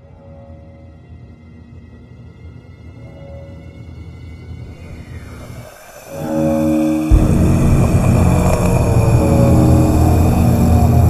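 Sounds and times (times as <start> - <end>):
dense low rumble: 4.7 - 11.0
heavy hit: 4.7 - 11.0
low held chord: 4.7 - 11.0.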